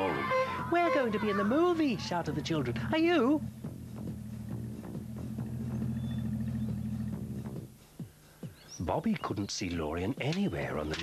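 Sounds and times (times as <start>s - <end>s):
cartoon engine chugging hum: 0.5s - 7.7s.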